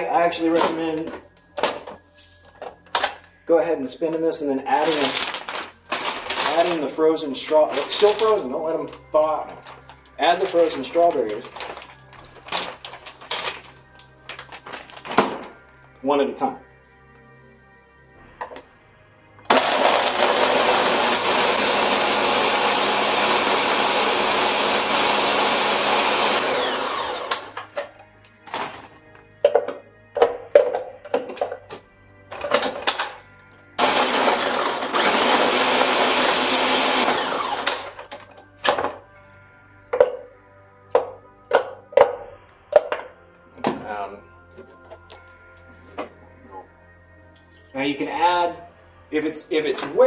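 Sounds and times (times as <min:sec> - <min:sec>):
blender running: 0:19.5 - 0:27.7, 0:33.8 - 0:38.0.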